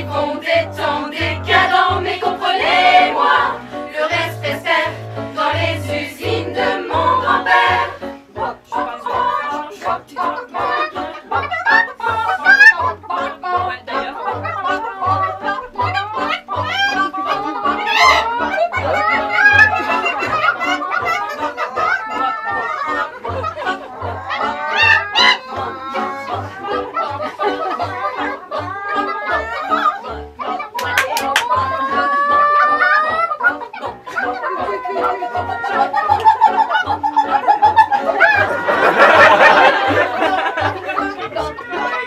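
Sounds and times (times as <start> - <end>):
women's choir singing: 0.0 - 32.4, 33.1 - 42.0.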